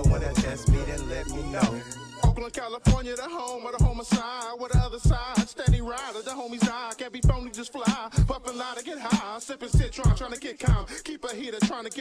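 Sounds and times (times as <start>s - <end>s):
deep bass kicks: 0.0s - 1.6s
man rapping over a beat: 0.0s - 12.0s.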